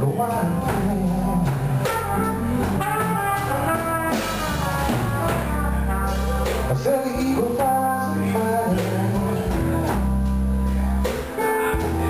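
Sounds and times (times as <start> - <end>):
person singing: 0.0 - 2.6, 3.4 - 12.0
electric bass: 0.0 - 12.0
trumpet melody: 0.3 - 12.0.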